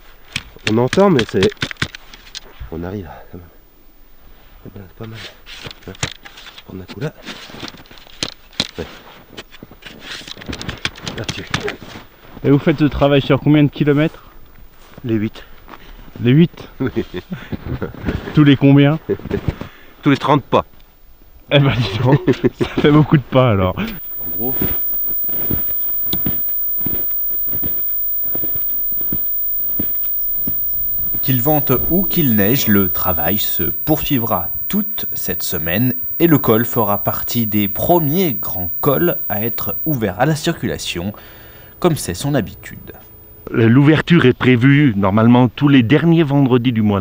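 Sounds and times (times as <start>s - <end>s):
sharp clicks: 23.8s - 40.0s.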